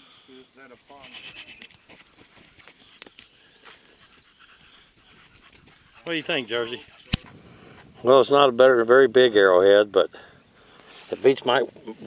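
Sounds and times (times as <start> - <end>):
insect chorus: 0.0 - 8.5.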